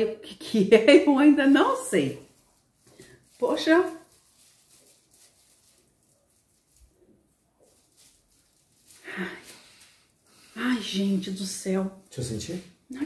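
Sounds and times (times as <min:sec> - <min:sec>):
person sniffing and breathing: 0:08.9 - 0:10.7.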